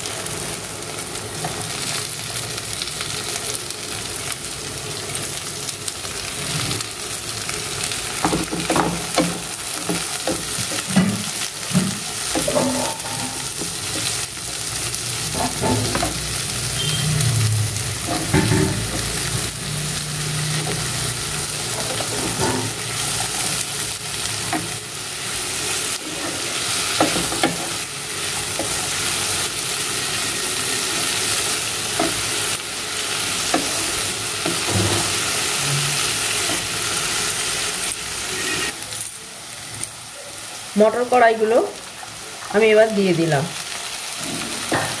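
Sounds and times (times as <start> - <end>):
vegetables sizzling in oil: 0.0 - 45.0.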